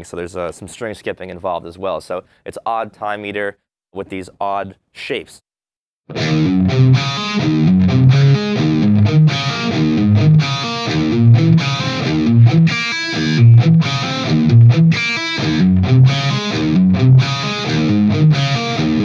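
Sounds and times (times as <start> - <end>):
distorted electric guitar riff: 6.1 - 19.0.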